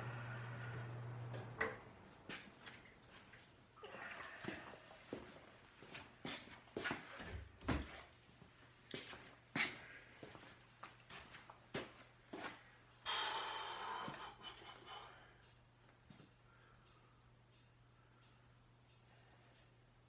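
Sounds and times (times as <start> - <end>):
steady low hum: 0.0 - 3.8.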